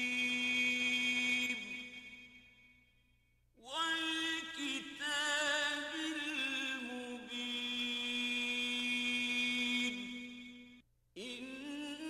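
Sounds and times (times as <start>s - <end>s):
call to prayer chanted: 0.0s - 2.5s, 3.6s - 12.0s.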